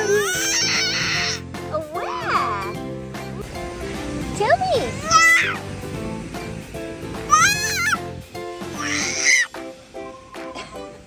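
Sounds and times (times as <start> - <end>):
baby squealing: 0.0 - 1.4, 4.8 - 5.6, 7.3 - 8.1, 8.7 - 9.5.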